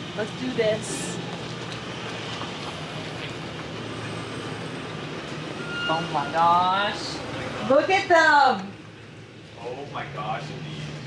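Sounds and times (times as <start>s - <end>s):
outdoor noise: 0.0s - 11.0s.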